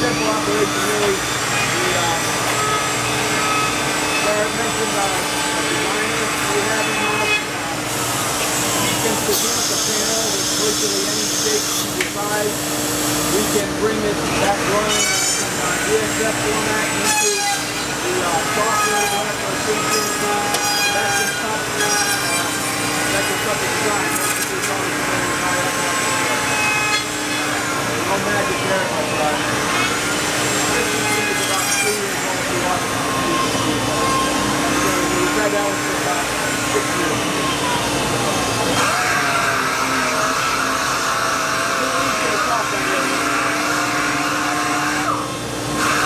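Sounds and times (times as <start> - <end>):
constant machine hum: 0.0 - 46.0
router machining wood: 0.0 - 46.0
workshop noise: 0.0 - 46.0.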